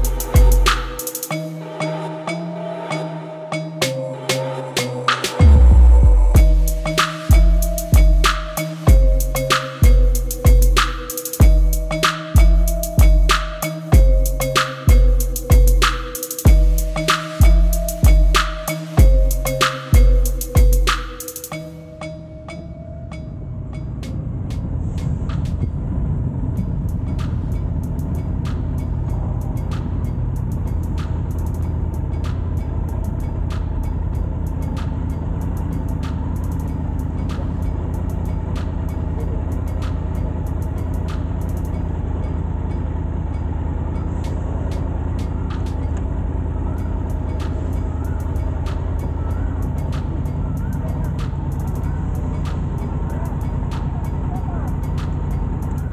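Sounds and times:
background music: 0.0s - 43.2s, 43.9s - 55.9s.

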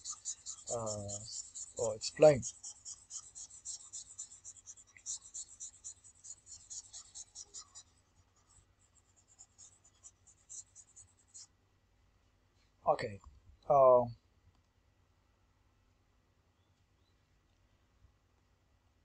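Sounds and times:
stylus scratching on pen tablet: 0.0s - 11.5s.

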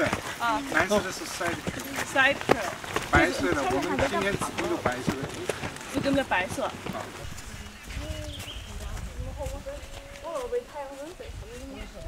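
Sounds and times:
people talking quietly: 0.0s - 12.0s.

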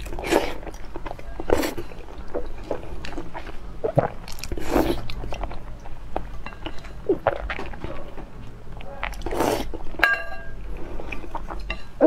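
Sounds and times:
metal spoon striking stone bowl: 10.0s - 10.6s.

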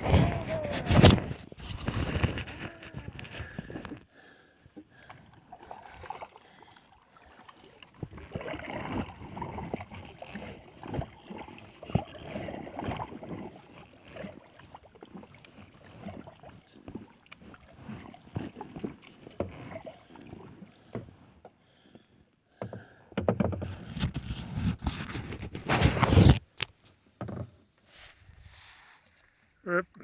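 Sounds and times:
paddle splashes and drips: 2.4s - 23.8s.

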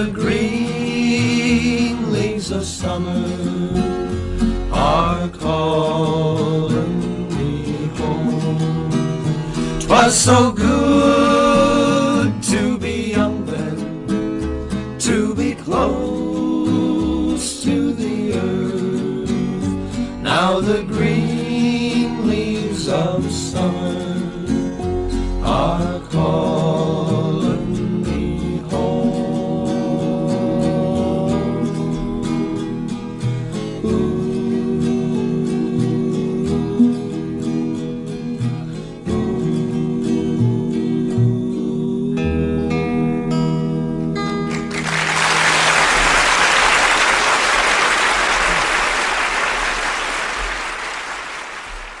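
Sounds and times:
upright bass: 0.0s - 46.6s
acoustic guitars: 0.0s - 52.0s
vocal harmonies: 0.0s - 52.0s
audience applause: 44.5s - 52.0s.

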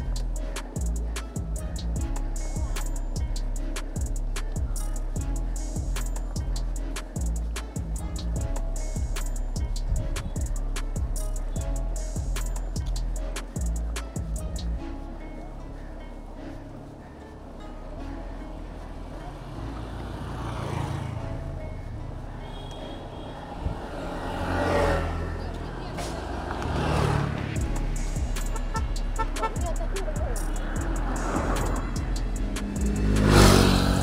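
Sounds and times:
vehicles passing on road: 0.0s - 34.0s
wind rumble on microphone: 7.4s - 13.1s, 23.5s - 25.4s.

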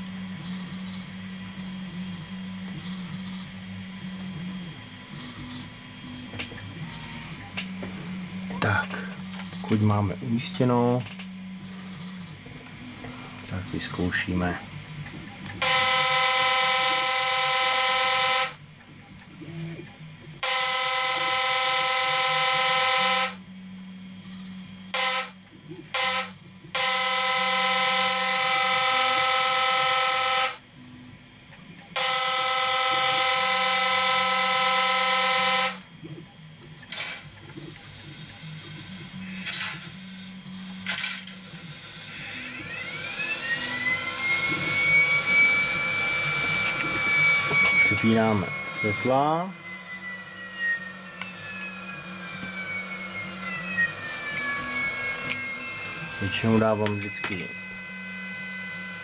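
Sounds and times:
low hum: 32.8s - 59.0s
rising whine: 36.9s - 59.0s.

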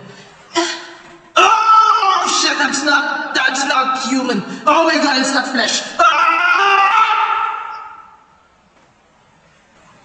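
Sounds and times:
man screaming: 1.4s - 3.8s, 4.7s - 8.3s.

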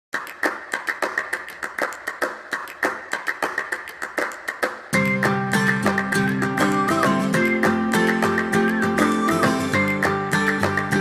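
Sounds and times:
hand-clap-like percussive hits: 0.1s - 11.0s.

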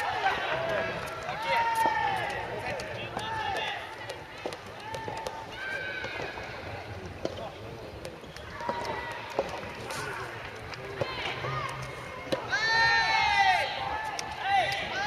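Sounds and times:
players shouting calls: 0.0s - 7.2s, 8.4s - 15.0s.

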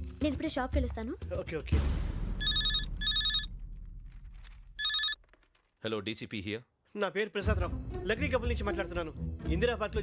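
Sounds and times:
telephone ringing: 2.4s - 3.5s, 4.8s - 5.2s.

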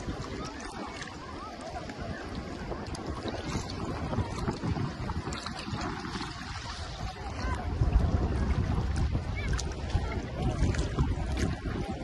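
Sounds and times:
sea water lapping and splashing: 0.0s - 12.0s
wind buffeting microphone: 0.0s - 12.0s.

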